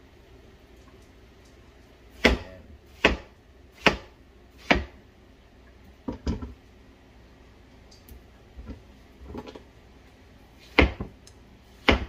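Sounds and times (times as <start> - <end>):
knife chopping onto cutting board: 2.2 - 5.0, 10.7 - 11.1, 11.8 - 12.0.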